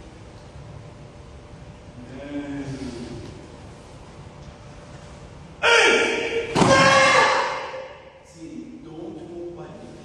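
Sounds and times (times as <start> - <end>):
person shouting kiai: 5.6 - 8.1.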